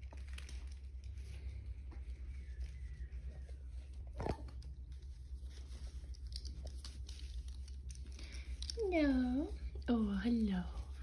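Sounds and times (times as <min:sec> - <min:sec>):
puppies chewing plush toys: 0:00.0 - 0:11.0.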